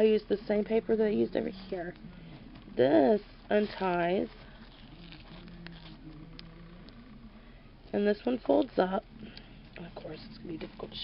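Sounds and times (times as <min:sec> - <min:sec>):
ribbon rustling: 0:01.8 - 0:06.2.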